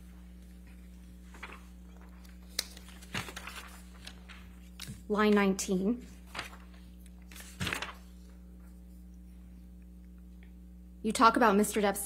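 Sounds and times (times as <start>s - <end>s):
low electrical hum: 0.0s - 12.0s
paper rustling: 0.3s - 8.8s.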